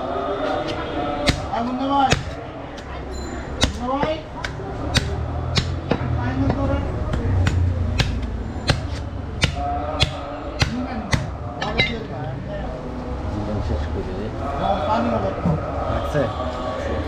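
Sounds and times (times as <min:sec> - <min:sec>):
cleaver chopping on wooden block: 0:01.2 - 0:02.9, 0:03.6 - 0:11.9.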